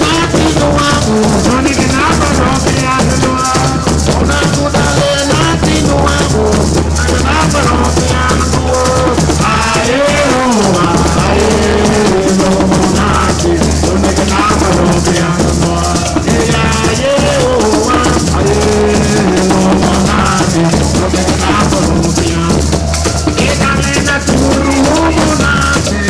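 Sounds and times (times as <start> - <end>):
hand drums playing: 0.0 - 26.0
maracas shaken: 0.0 - 26.0
person singing: 0.0 - 26.0.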